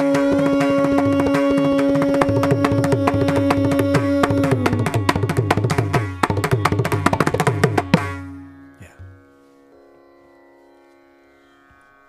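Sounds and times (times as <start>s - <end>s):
hand drum strokes ringing: 0.0s - 8.3s.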